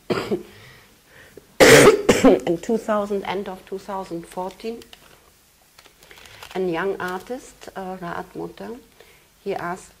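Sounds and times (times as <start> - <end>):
woman coughing: 0.1 - 0.5, 1.6 - 2.4.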